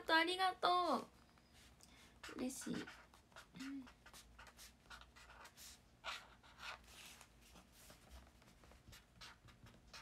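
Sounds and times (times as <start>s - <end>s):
pen scratching on paper: 1.6s - 10.0s
soft voice humming: 3.4s - 4.0s.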